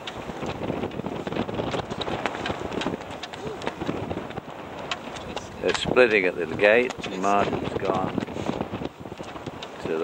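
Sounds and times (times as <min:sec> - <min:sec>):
choppy water: 0:00.0 - 0:10.0
wind buffeting microphone: 0:00.0 - 0:10.0.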